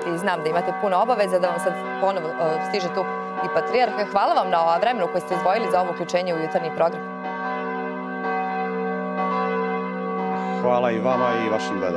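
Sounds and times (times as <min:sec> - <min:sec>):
church bells ringing: 0:00.0 - 0:11.9.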